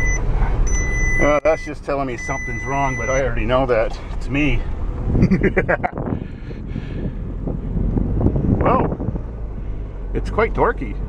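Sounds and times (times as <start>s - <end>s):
diesel engine and road rumble: 0.0s - 11.0s
man laughing: 5.1s - 6.1s.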